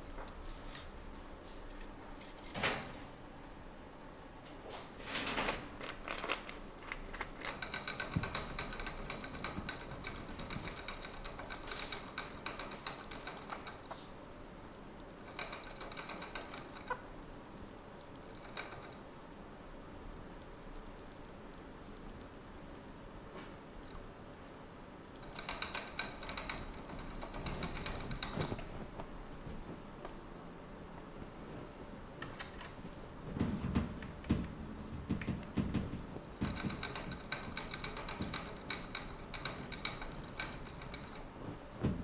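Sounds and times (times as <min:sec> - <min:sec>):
chipmunk clicking and crunching: 0:05.8 - 0:14.4, 0:15.0 - 0:22.3.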